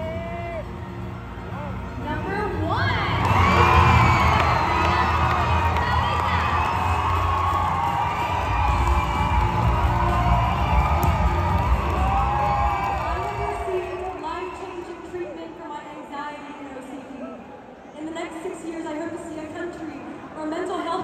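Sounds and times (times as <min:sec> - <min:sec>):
audience cheering and screaming: 0:02.8 - 0:14.4.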